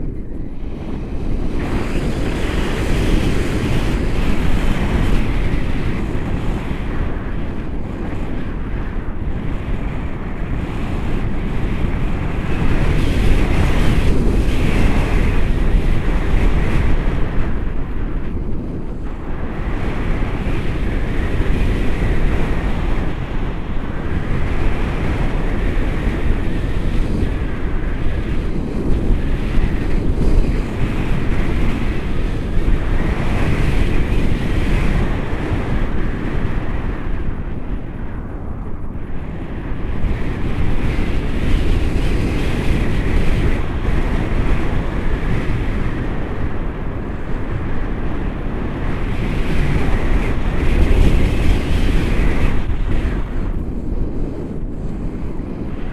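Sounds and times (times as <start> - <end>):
wind rushing over microphone: 0.0 - 55.9.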